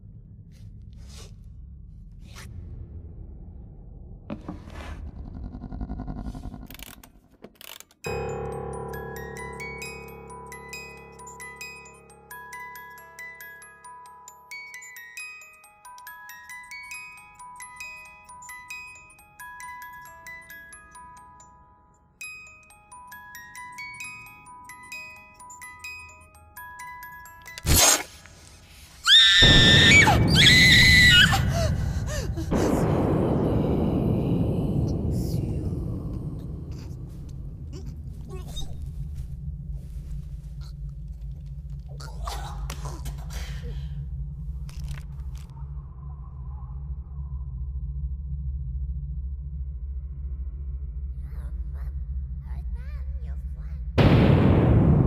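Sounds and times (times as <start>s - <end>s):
low rumbling horror drone: 0.0s - 4.3s, 29.5s - 52.8s
loud low rumble: 1.8s - 4.3s, 31.4s - 41.5s
woman screaming: 29.0s - 32.4s.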